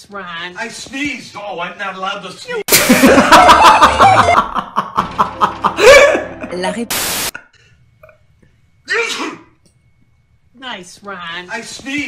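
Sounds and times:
person sneezing: 8.9s - 9.6s.

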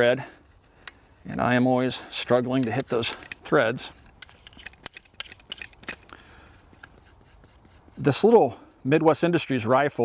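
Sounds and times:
faint handling noise: 0.8s - 8.3s
metallic clicks and scrapes: 2.2s - 8.4s.

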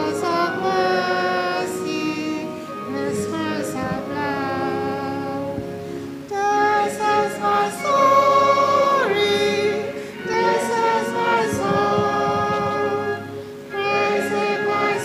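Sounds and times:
congregation singing a hymn: 0.0s - 15.0s.

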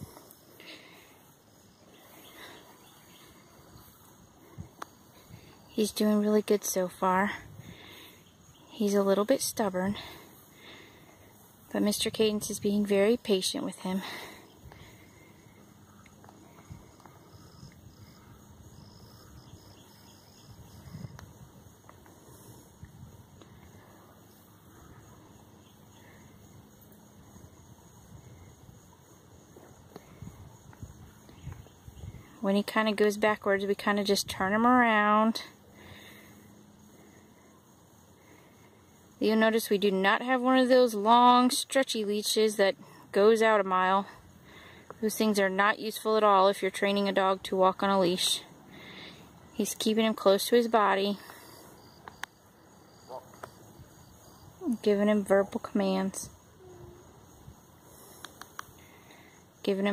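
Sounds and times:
high-pitched insect drone: 50.7s - 59.9s.

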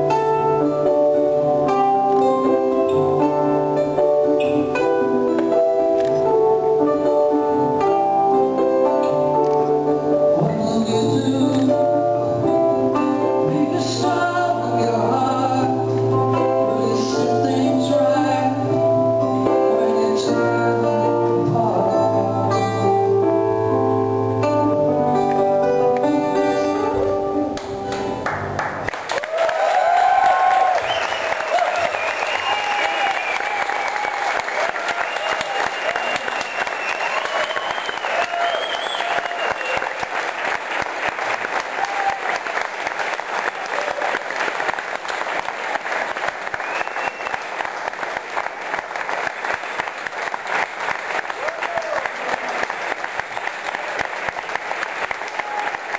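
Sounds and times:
audience clapping: 27.5s - 55.9s
shouts and whoops: 29.1s - 40.0s, 41.7s - 42.4s, 51.4s - 52.2s
audience cheering: 29.1s - 48.2s, 51.0s - 55.9s.

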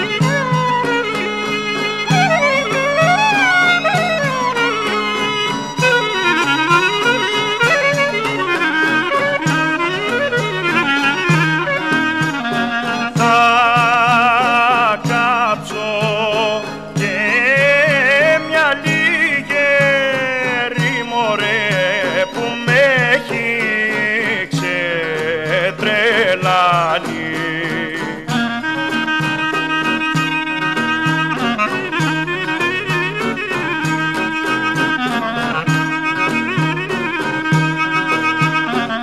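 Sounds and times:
ornamented clarinet melody: 0.0s - 15.4s, 27.9s - 39.0s
rhythmic accompaniment: 0.0s - 39.0s.

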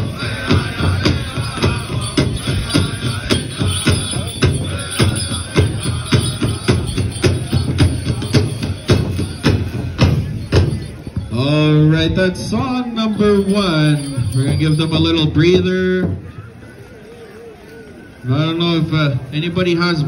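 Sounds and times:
group singing: 0.0s - 8.8s
big drum steady beat: 0.0s - 15.1s.

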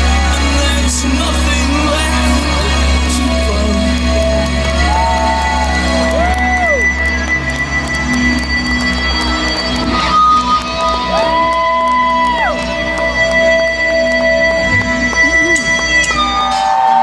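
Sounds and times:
bending electric guitar notes: 0.0s - 17.0s.

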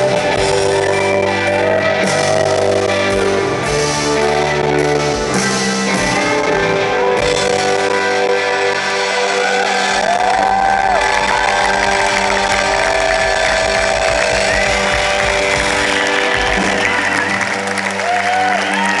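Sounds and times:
rock band playing through pa: 0.0s - 19.0s.

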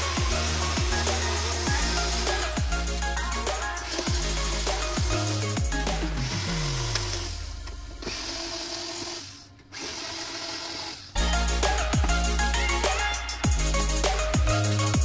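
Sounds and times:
drum and bass music: 0.0s - 8.3s, 11.2s - 15.0s
cordless drill whirring: 6.2s - 11.2s.

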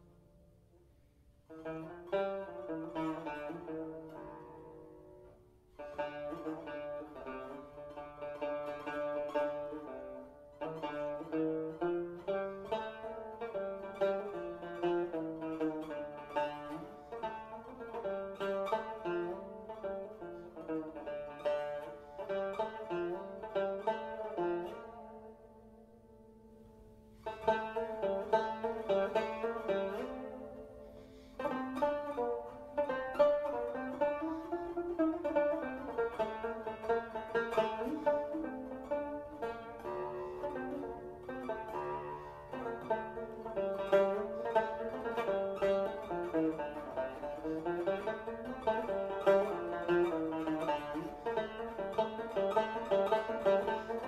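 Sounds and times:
plucked lute melody: 0.0s - 54.0s.

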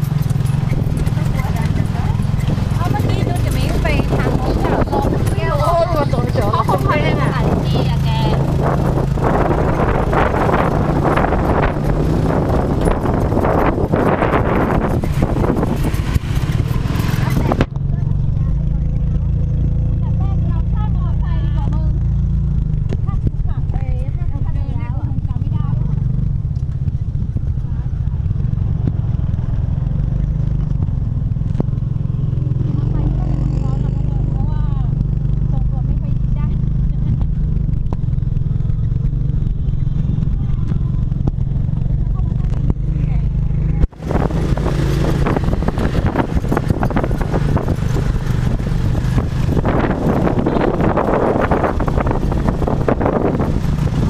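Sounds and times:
scooter engine droning: 0.0s - 54.0s
wind rushing over microphone: 0.0s - 54.0s
faint voices: 1.0s - 8.5s.

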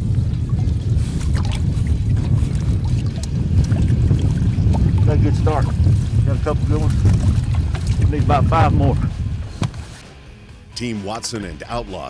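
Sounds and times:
loud low rumble: 0.0s - 9.7s
water pouring and splashing: 0.0s - 10.0s.

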